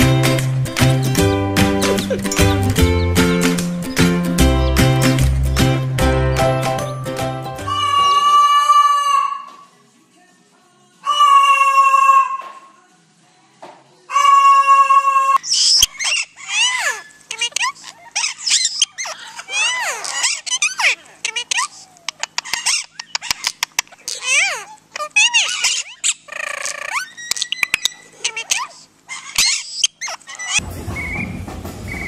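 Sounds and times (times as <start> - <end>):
parakeets chattering: 1.5 - 6.0, 7.6 - 8.8, 14.1 - 31.2
cockatoo calling: 1.6 - 3.2, 7.6 - 9.7, 11.0 - 12.7, 14.1 - 32.0.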